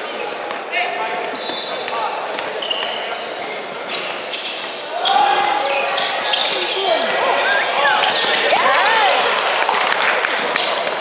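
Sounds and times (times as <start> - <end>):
sneakers squeaking on hardwood: 0.0 - 9.3
players calling out: 4.2 - 11.0.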